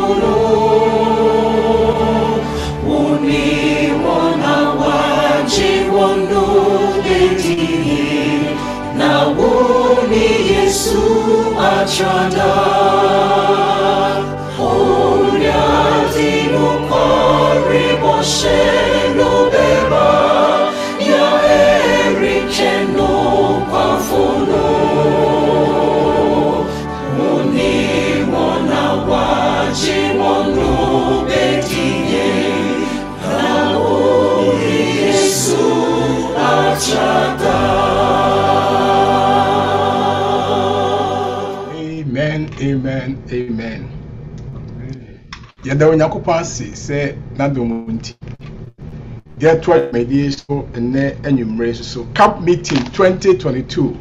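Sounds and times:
mixed choir singing a hymn: 0:00.0 - 0:41.9.

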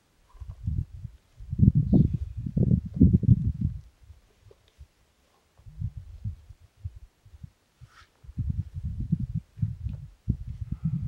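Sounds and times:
wind buffeting microphone: 0:00.3 - 0:04.6, 0:05.6 - 0:11.0.

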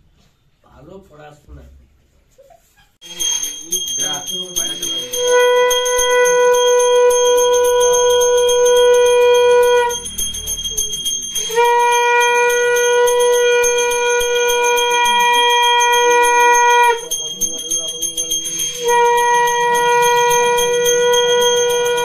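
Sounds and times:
conch shell blown: 0:03.0 - 0:22.0
hand bell ringing: 0:03.0 - 0:22.0.

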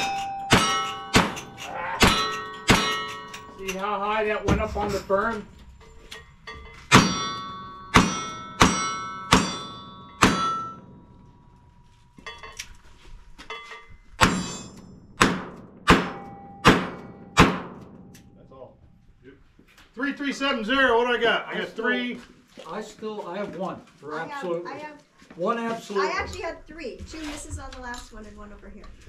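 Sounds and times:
metallic rings of steel targets: 0:00.0 - 0:18.8.

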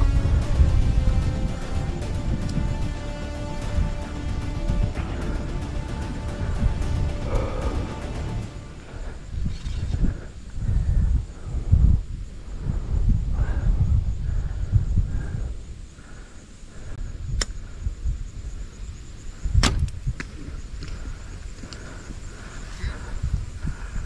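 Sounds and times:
background music with low thumps: 0:00.0 - 0:10.2.

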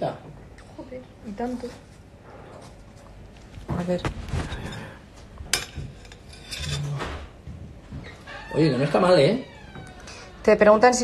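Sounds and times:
knife and plate clinking: 0:05.5 - 0:07.1.

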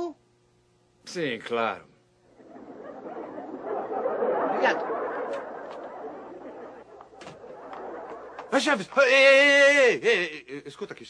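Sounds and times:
studio audience laughing: 0:02.3 - 0:09.0.

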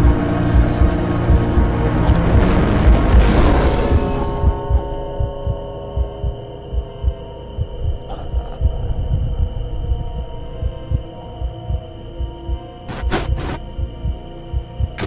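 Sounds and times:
drone of held tones: 0:00.0 - 0:15.0
heartbeat low thumps: 0:00.0 - 0:15.0.

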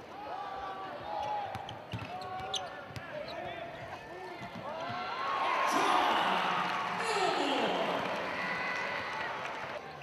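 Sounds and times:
sneakers squeaking on floor: 0:01.2 - 0:03.5.

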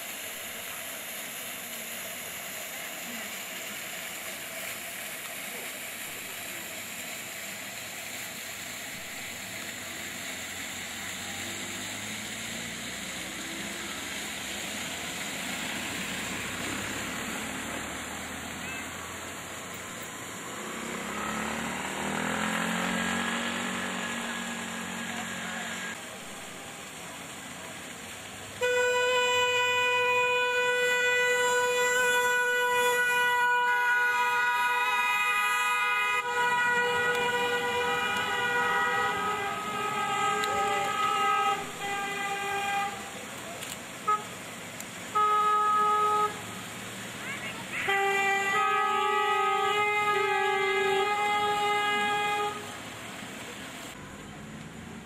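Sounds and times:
car horns honking: 0:28.6 - 0:43.2, 0:44.0 - 0:44.4, 0:45.1 - 0:46.6, 0:47.6 - 0:52.8.

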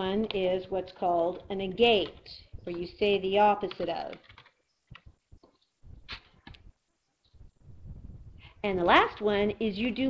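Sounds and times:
computer keyboard and mouse clicks: 0:03.6 - 0:06.7.

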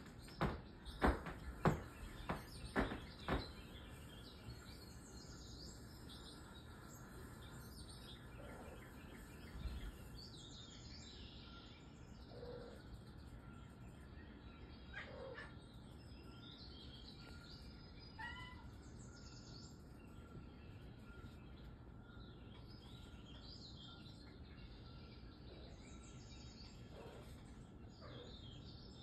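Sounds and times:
faint high bird chirps: 0:00.0 - 0:29.0.

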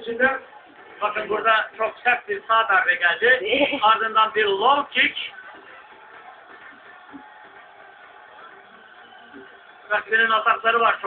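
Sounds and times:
faint music: 0:00.0 - 0:11.0
tv fight broadcast: 0:00.0 - 0:11.0.

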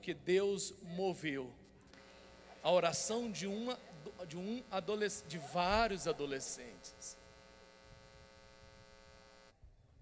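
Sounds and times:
faint electrical mains hum: 0:01.8 - 0:09.5.

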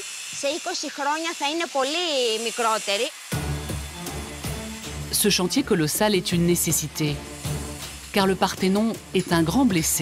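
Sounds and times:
woman speaking in a high voice: 0:00.0 - 0:03.2.

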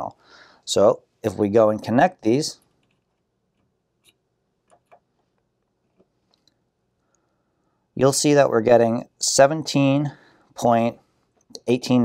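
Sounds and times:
faint small clicks of probes: 0:02.6 - 0:07.4.

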